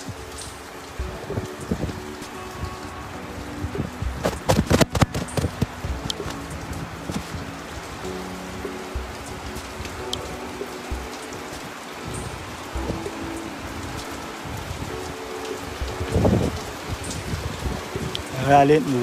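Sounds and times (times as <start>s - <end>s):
faint held musical tones: 0.0s - 19.0s
steady rain falling: 0.0s - 19.0s.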